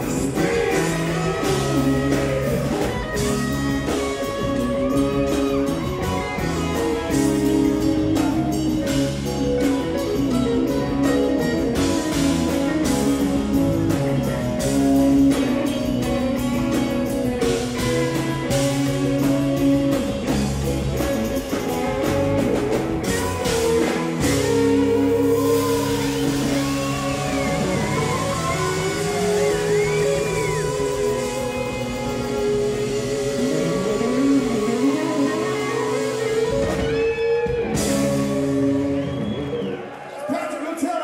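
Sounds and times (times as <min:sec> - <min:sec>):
lead guitar line bending pitch: 0:00.0 - 0:39.8
bass guitar: 0:00.0 - 0:40.0
drum kit beat: 0:00.0 - 0:40.0
electric guitars: 0:00.0 - 0:40.3.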